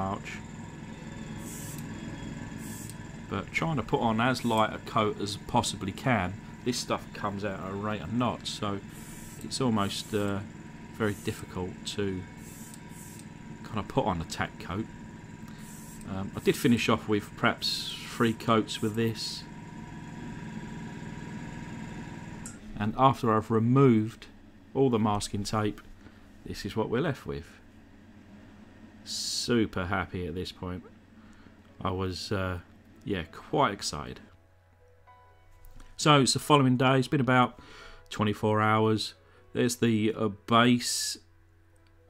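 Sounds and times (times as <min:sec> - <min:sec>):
steady low hum: 0:00.0 - 0:42.0
airbrush spraying hiss: 0:01.4 - 0:01.8, 0:02.6 - 0:03.0, 0:08.9 - 0:09.4, 0:12.4 - 0:13.3, 0:15.6 - 0:16.5
motor switch click: 0:02.6 - 0:03.1, 0:12.5 - 0:13.4.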